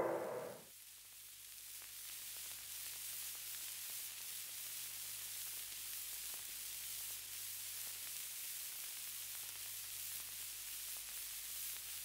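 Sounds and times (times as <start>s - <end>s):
low hum: 0.0s - 0.6s
record surface hiss: 0.0s - 12.0s.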